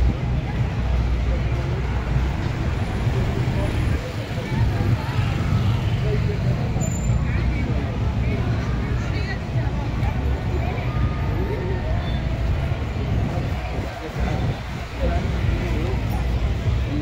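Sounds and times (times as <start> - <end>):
people's voices: 0.0 - 17.0
traffic rumble: 0.0 - 17.0.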